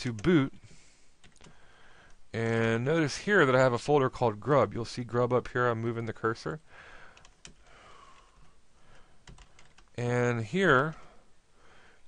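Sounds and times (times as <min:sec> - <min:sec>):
faint keyboard keystrokes: 0:09.2 - 0:09.9.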